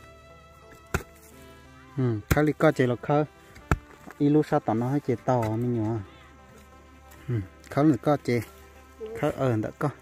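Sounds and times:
hoe chopping into dry soil: 0.0 - 6.0.

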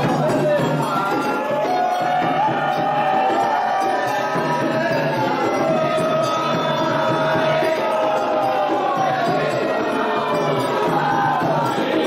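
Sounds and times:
voices singing: 0.0 - 12.0.

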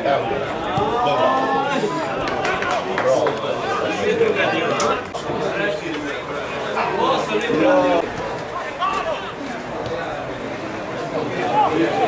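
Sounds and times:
men talking and calling out: 0.0 - 12.0
outdoor background noise: 0.0 - 12.0.

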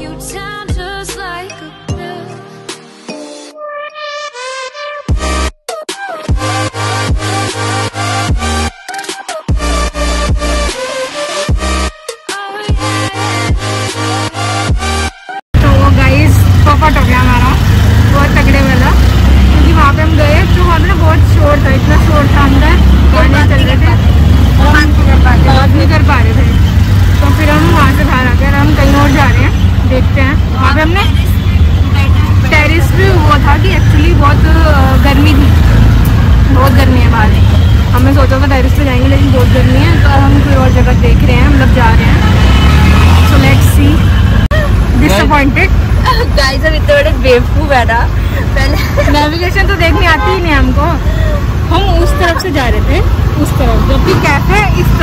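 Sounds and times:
people talking: 15.6 - 24.0, 24.6 - 26.6, 27.2 - 31.4, 32.0 - 35.5, 36.5 - 42.2, 43.3 - 55.0
auto-rickshaw engine rumble: 15.6 - 55.0.

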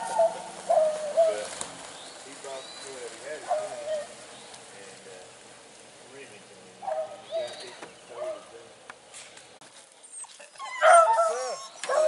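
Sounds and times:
hounds yelping: 0.0 - 1.5, 3.3 - 4.2, 6.8 - 8.5, 10.0 - 12.0.

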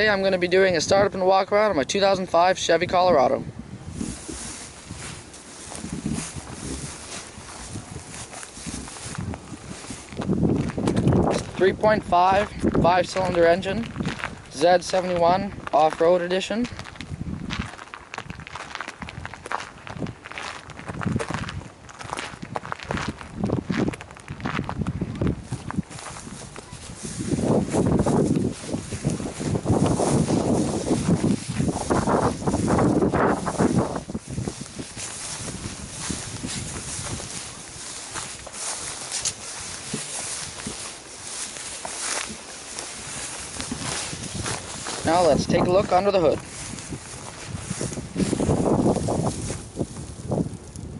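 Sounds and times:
wind on microphone: 2.2 - 50.9
footsteps on grass and gravel: 2.4 - 50.9.

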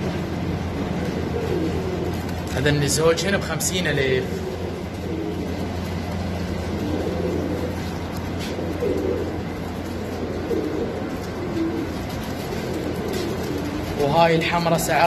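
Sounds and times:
pigeons cooing: 0.0 - 15.0
steady low hum: 0.0 - 15.0.

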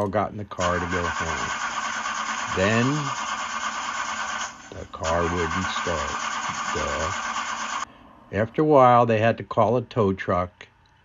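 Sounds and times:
car engine cranking: 0.6 - 7.8.

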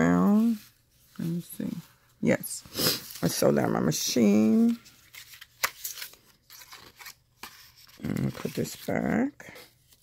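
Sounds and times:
paper and card rustling: 0.0 - 10.0.

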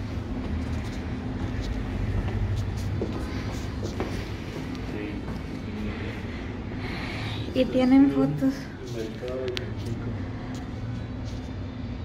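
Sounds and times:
steady low rumble: 0.0 - 12.0
footsteps on stairs: 0.3 - 5.8.

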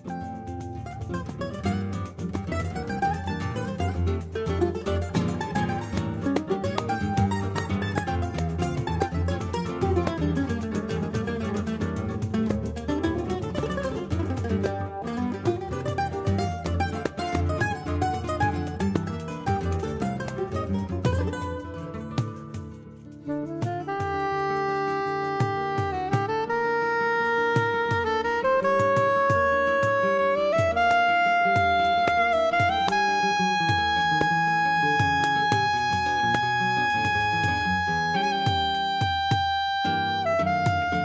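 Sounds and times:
mandolin and acoustic guitars: 0.0 - 26.6, 27.2 - 41.0.

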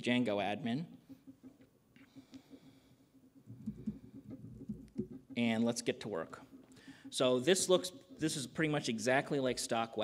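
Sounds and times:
low steady hum: 0.0 - 10.0
faint keyboard typing: 0.1 - 9.6.

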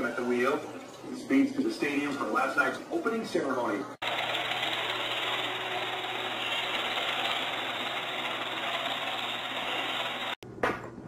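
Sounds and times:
robot vacuum cleaner running: 4.0 - 10.4.

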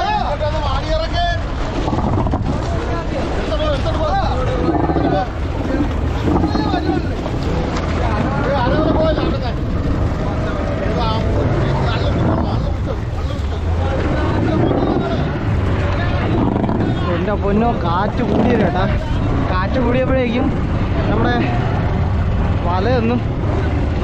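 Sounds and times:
boat rumble: 0.0 - 24.0
men talking and calling out: 0.0 - 24.0
wind on microphone: 1.4 - 19.4.

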